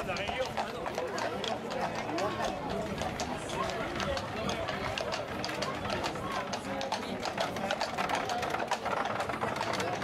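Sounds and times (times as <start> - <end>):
horse hooves clip-clopping on road: 0.0 - 10.0
murmur of crowd: 0.0 - 10.0.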